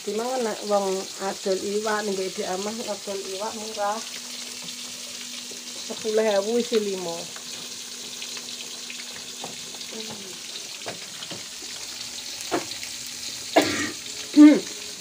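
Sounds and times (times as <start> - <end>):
fish sizzling in hot oil: 0.0 - 15.0
oil crackles and pops: 0.9 - 15.0.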